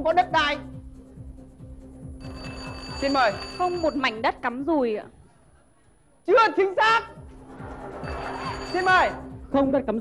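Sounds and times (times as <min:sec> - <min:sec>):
quiet game-show music: 0:00.0 - 0:10.0
electronic answer bell ringing: 0:02.2 - 0:04.2, 0:08.0 - 0:09.4.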